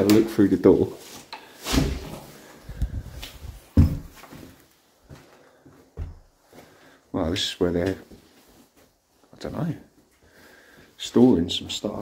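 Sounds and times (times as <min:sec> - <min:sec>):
shuffling footsteps: 0:00.1 - 0:12.0
dull knocks and thumps: 0:03.7 - 0:04.3.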